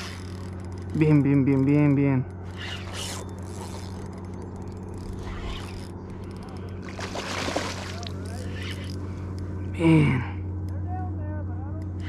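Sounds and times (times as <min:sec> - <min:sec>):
steady low hum: 0:00.0 - 0:12.0
fish splashing at water surface: 0:06.8 - 0:08.7.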